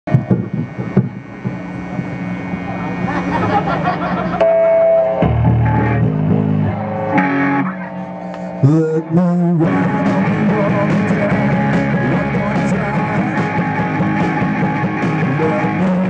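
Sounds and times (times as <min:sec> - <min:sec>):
amplifier hum: 0:00.1 - 0:16.0
electric guitars sustained notes: 0:00.1 - 0:16.0.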